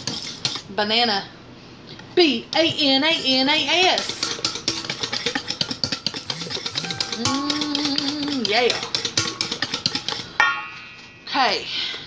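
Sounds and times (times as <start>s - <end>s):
utensil clicking in metal bowl: 3.9s - 10.3s.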